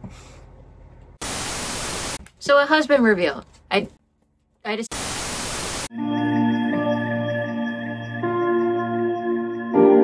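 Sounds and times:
loud tv static hiss: 1.2s - 2.2s, 4.9s - 5.9s.

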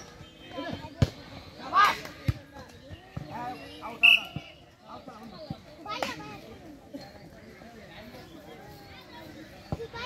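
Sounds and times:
spectators calling out and talking: 0.0s - 10.0s.

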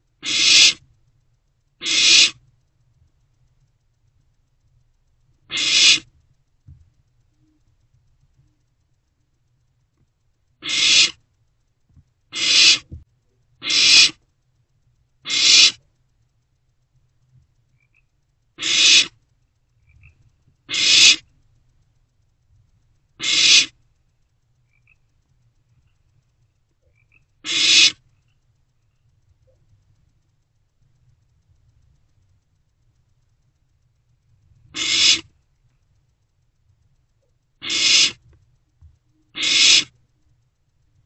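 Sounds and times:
owl chicks hissing calls: 0.2s - 0.8s, 1.8s - 2.4s, 5.5s - 6.1s, 10.6s - 11.2s, 12.3s - 12.9s, 13.6s - 14.2s, 15.2s - 15.8s, 18.6s - 19.2s, 19.9s - 21.3s, 23.2s - 23.8s, 26.8s - 28.1s, 34.7s - 35.3s, 37.6s - 38.3s, 39.2s - 40.0s.

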